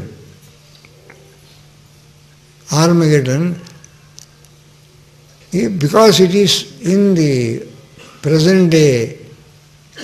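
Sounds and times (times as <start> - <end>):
man speaking: 0.0 - 0.3, 2.6 - 3.8, 5.5 - 9.4
faint low hum: 0.0 - 10.0.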